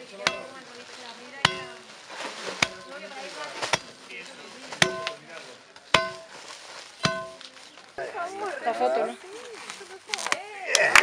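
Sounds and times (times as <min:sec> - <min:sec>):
steel tamper thudding on earth bag: 0:00.0 - 0:07.6.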